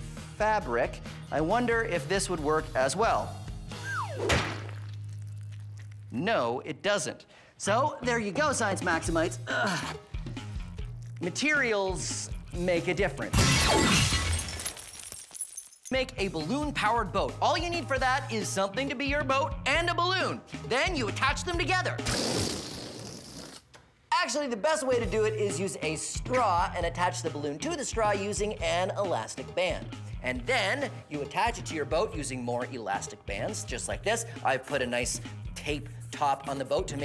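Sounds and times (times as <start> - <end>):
falling whistle: 3.8 - 4.3
thud on concrete floor: 4.3 - 4.7
balloon rubbing against foam: 22.0 - 23.7.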